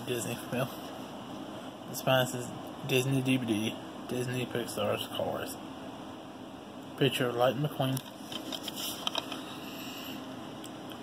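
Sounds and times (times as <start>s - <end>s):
steady background hiss: 0.0s - 11.0s
plastic case rustling and clicking: 8.0s - 9.4s.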